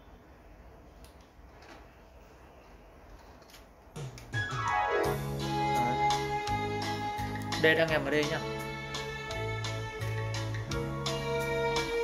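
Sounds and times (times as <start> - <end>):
music over speakers: 4.0 - 12.0
held keyboard-like chords: 4.3 - 12.0.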